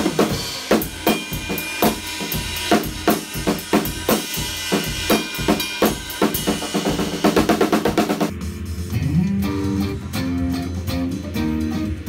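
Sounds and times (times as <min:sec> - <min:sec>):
drum kit playing: 0:00.0 - 0:12.0.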